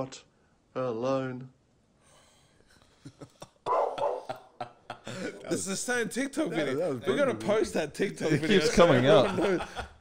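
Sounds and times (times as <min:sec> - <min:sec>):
man laughing breathily: 0:09.4 - 0:10.0.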